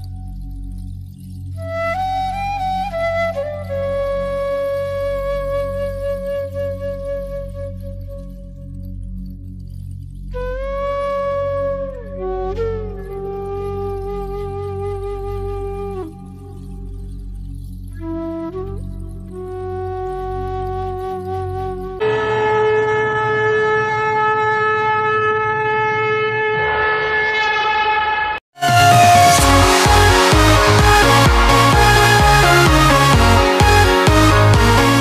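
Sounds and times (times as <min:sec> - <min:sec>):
flute melody: 0:00.0 - 0:09.3, 0:10.2 - 0:35.0
long held note: 0:21.8 - 0:35.0
low drone: 0:21.9 - 0:35.0.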